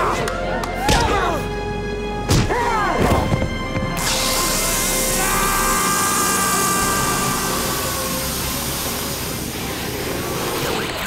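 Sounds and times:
background music score: 0.0 - 11.0.

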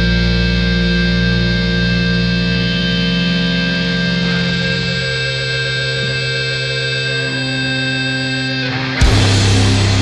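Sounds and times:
distorted electric guitar chord: 0.0 - 10.0.

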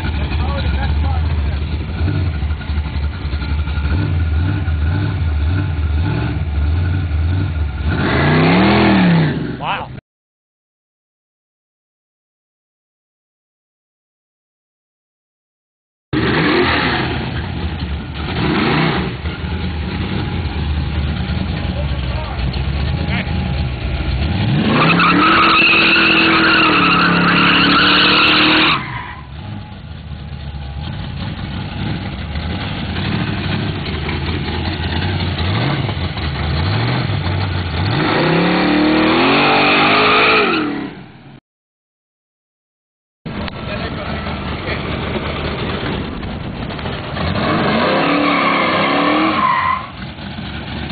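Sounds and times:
car engine revving: 0.0 - 9.6, 16.2 - 41.0, 43.3 - 50.9
tyre squeal: 24.6 - 29.8, 47.9 - 50.0.

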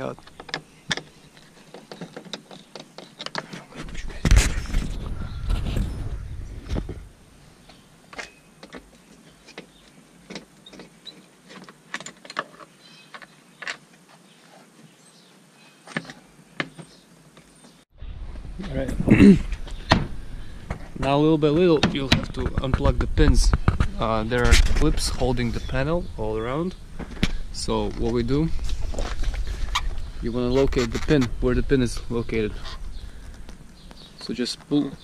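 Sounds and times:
low rustling: 3.4 - 8.0.

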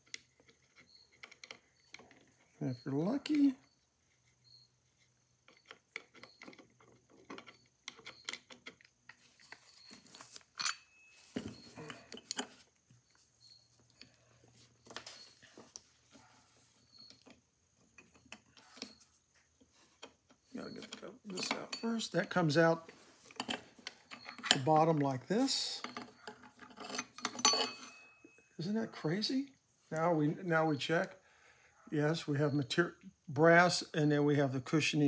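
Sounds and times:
small metal parts clicking: 0.0 - 2.5, 5.4 - 15.2, 19.9 - 22.4.

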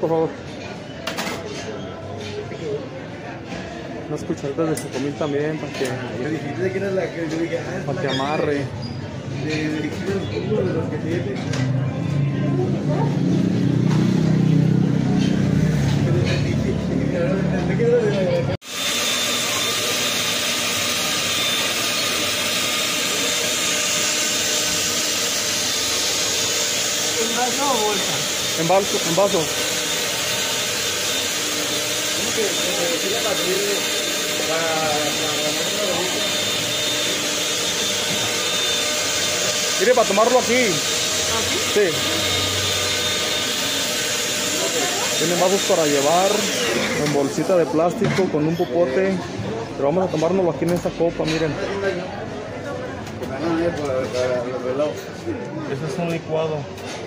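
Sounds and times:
faint voices talking: 0.0 - 18.6, 26.2 - 57.0
blender motor running: 18.6 - 47.8.

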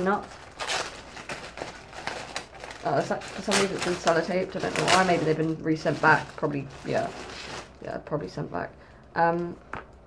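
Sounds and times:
sellotaped packaging crinkling: 0.0 - 7.9.

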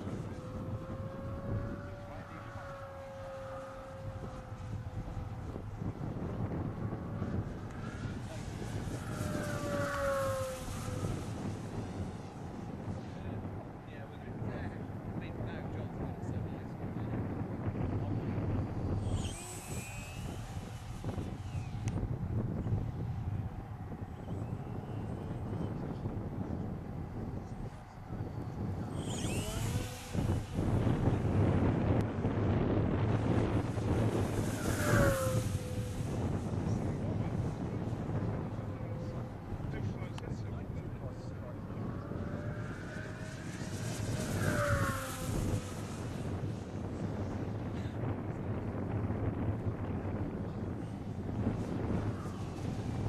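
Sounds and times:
model plane motor whine passing: 0.0 - 53.0
wind rumble on microphone: 0.0 - 53.0.

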